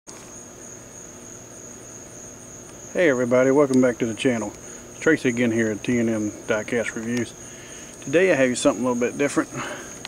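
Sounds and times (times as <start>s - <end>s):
crickets trilling: 0.1s - 10.0s.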